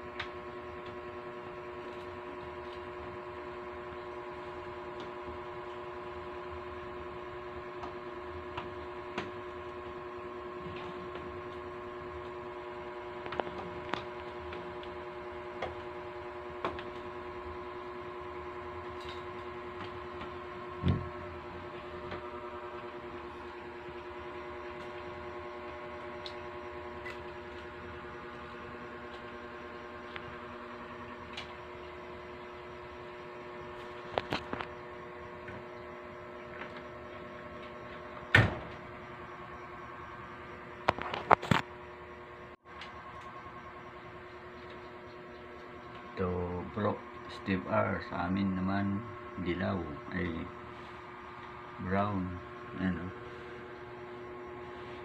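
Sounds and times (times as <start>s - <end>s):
fluorescent light humming: 0.0s - 55.0s.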